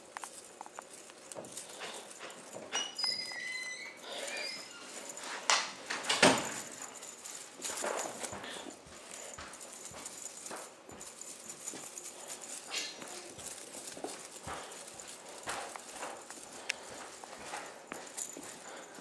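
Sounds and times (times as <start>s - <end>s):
paws thumping on carpet: 5.0s - 19.0s.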